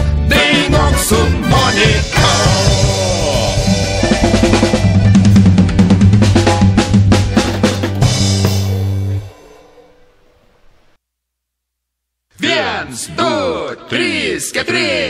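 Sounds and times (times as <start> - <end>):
band playing: 0.0 - 10.2
drum fill: 0.9 - 10.3.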